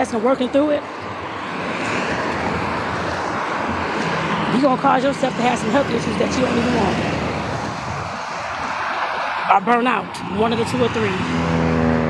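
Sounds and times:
vehicle passing close by: 0:00.0 - 0:12.0.

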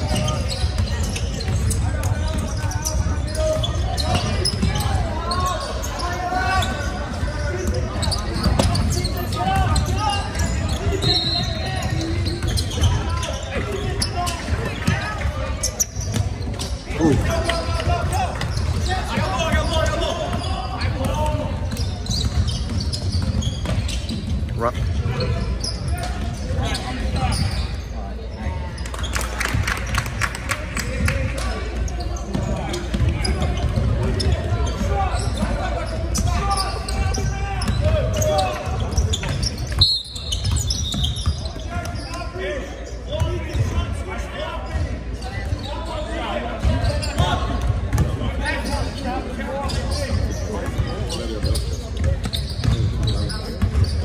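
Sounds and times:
people talking: 0:00.0 - 0:21.9.

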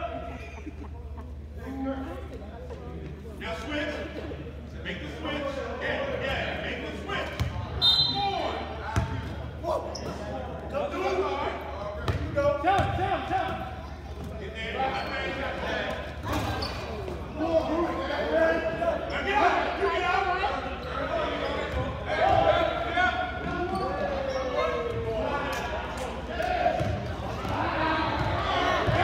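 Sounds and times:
people talking and calling out: 0:00.0 - 0:29.0.

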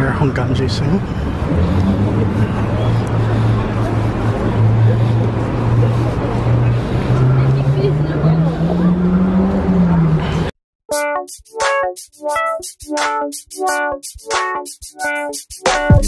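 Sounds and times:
vehicle engine humming: 0:00.3 - 0:10.5.

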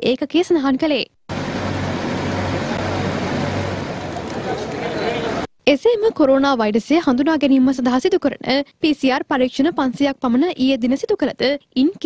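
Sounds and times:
bus engine idling: 0:01.3 - 0:05.5.

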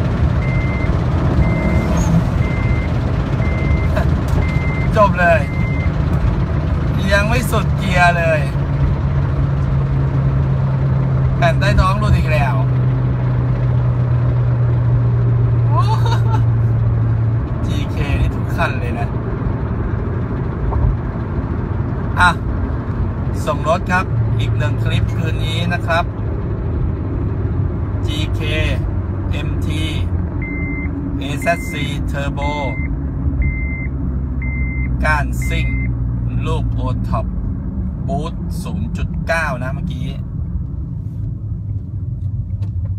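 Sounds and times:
car engine droning inside cabin: 0:00.0 - 0:42.9
high electronic beep: 0:00.4 - 0:05.9, 0:30.4 - 0:31.8, 0:32.6 - 0:35.9.

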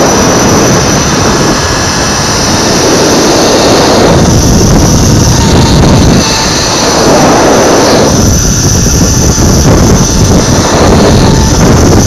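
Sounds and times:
wind buffeting microphone: 0:00.0 - 0:12.0
zipline trolley whirring on cable: 0:00.0 - 0:12.0.

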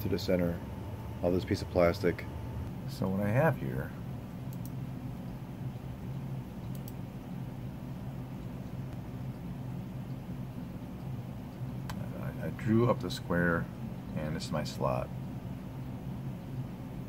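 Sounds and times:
low mechanical hum: 0:00.0 - 0:17.0
faint clicks: 0:04.5 - 0:04.8, 0:06.6 - 0:07.0.

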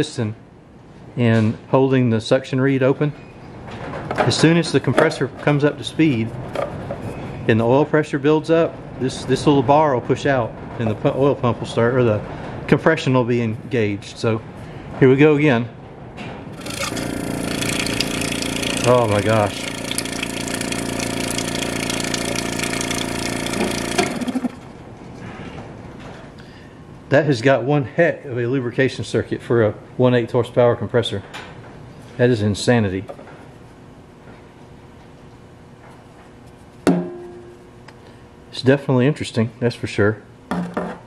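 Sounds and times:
refrigerator compressor hum: 0:16.4 - 0:41.0.

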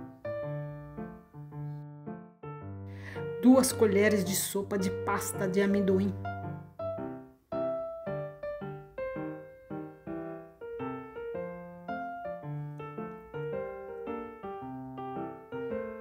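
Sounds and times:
solo piano music: 0:00.0 - 0:16.0.

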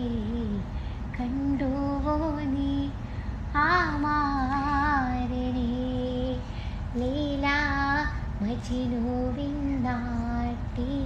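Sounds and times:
boy breathing: 0:06.4 - 0:06.9.

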